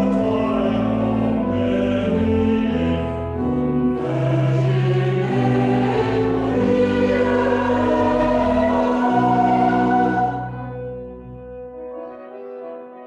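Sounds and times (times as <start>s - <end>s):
church choir singing: 0.0s - 12.4s.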